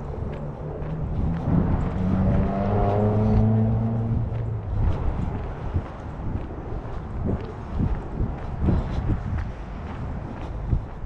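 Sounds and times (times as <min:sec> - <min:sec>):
vehicle engine passing: 0:00.0 - 0:07.4.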